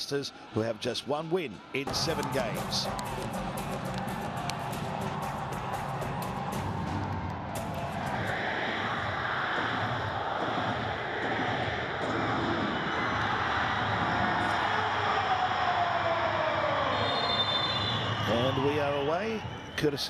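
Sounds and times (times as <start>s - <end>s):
stadium crowd cheering: 0.0s - 20.0s.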